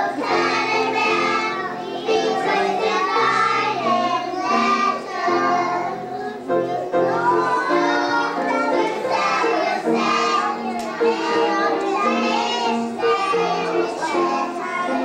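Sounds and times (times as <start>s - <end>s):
children singing together: 0.0s - 15.0s.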